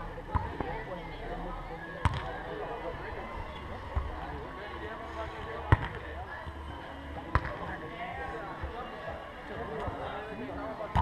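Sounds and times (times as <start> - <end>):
ball being kicked: 2.0 - 2.3, 5.7 - 6.0, 7.3 - 7.6.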